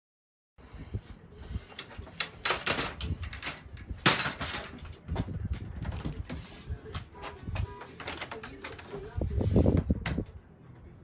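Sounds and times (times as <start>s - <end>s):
knocks and scrapes of handling: 1.4s - 10.3s.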